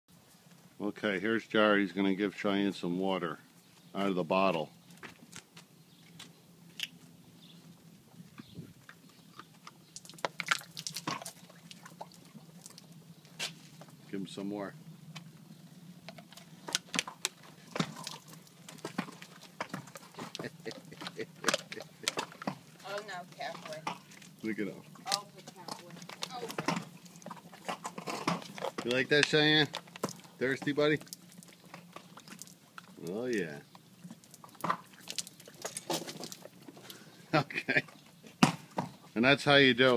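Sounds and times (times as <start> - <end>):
horse drinking from plastic bottle: 8.4 - 13.2, 16.1 - 33.0, 33.7 - 37.1
plastic bottle crinkling: 9.9 - 12.9, 34.1 - 36.8.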